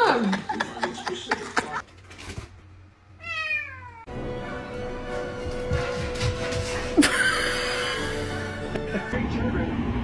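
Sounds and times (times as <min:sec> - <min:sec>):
background music: 0:04.1 - 0:10.0.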